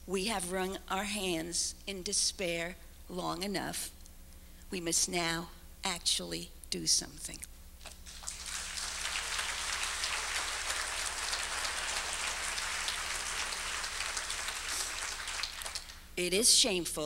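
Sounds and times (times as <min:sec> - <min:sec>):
audience applauding: 0:08.1 - 0:16.1.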